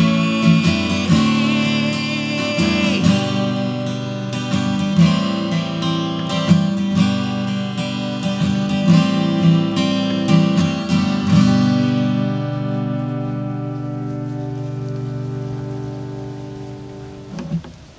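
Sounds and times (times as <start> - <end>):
acoustic guitar strumming: 0.0 - 17.9.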